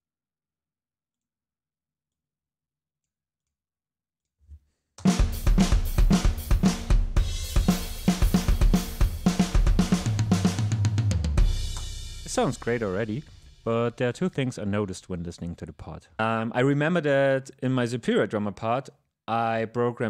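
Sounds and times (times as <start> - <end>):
snare drum: 5.0 - 13.6
tom fill: 5.0 - 17.3
crash cymbal: 11.4 - 13.7.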